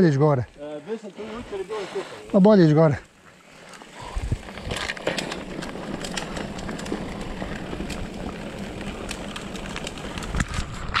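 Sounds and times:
bike tyres rolling over dirt: 0.0 - 11.0
bike clicks and rattles: 2.5 - 11.0.

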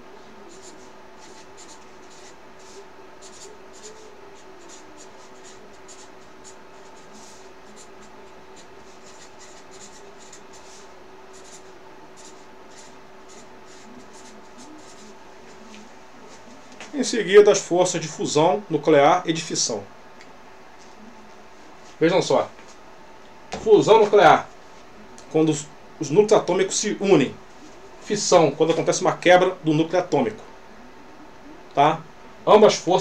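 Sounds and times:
faint steady hum: 0.0 - 33.0
marker scratching on paper: 0.5 - 16.9.

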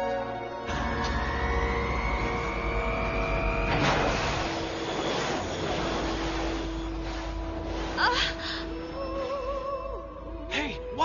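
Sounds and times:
rising robotic whine: 0.6 - 7.9
loud rushing blast: 0.7 - 7.9.

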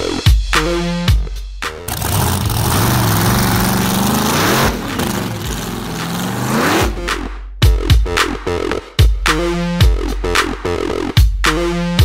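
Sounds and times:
beat-driven music: 0.6 - 12.0
drag race car engine accelerating: 1.8 - 7.1.

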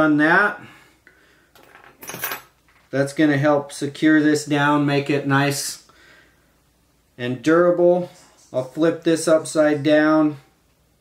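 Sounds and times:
small tools clinking and rattling: 1.6 - 2.9.

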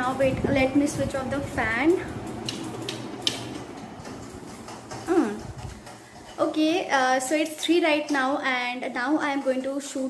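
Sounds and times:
fan humming winding down: 0.0 - 9.0.

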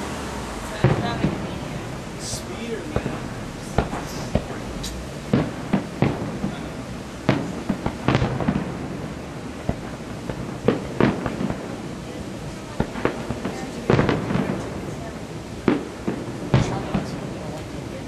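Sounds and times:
fireworks bursting with sharp bangs: 0.0 - 18.0.

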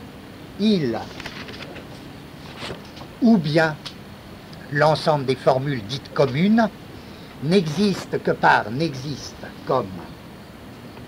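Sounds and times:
cassette hiss and room noise: 0.0 - 11.0.

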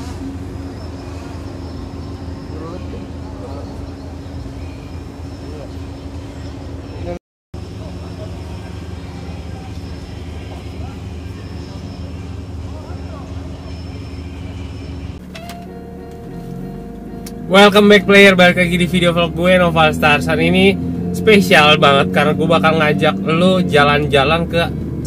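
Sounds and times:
car engine idling: 0.0 - 25.0
faint voices: 5.3 - 15.1.

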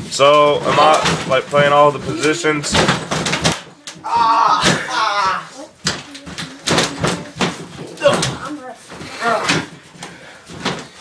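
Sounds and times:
people shouting: 4.0 - 5.7.

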